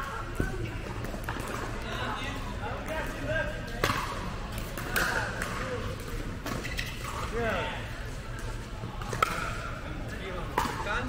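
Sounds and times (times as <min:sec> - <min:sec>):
murmur of voices: 0:00.0 - 0:11.0.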